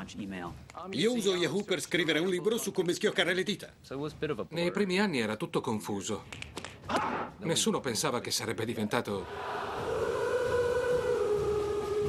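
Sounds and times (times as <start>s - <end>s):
crowd yodeling in unison: 9.2s - 12.0s.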